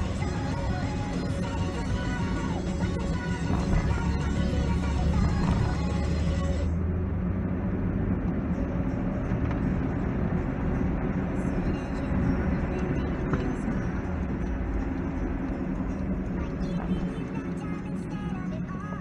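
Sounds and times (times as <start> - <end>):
car engine and tyre rumble: 0.0 - 19.0.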